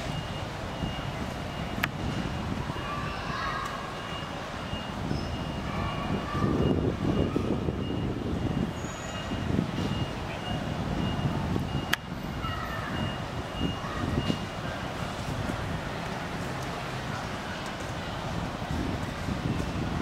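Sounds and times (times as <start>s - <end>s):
distant traffic rumble: 0.0s - 20.0s.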